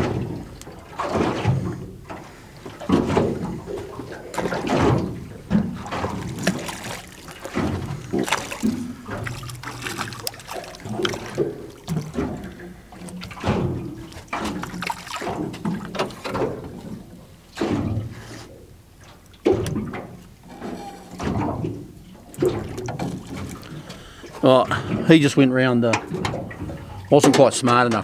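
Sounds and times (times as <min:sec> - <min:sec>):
waves lapping against a boat: 0:00.0 - 0:28.0.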